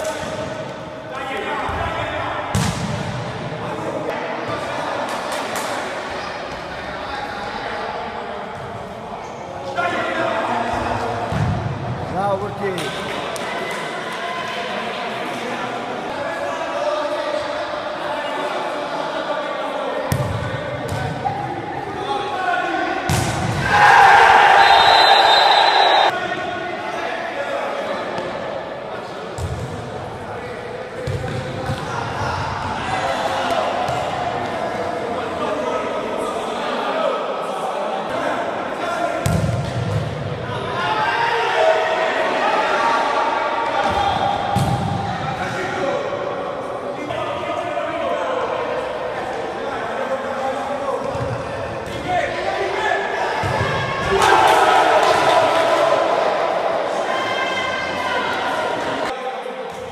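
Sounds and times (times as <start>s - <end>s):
players' voices: 0.0s - 59.9s.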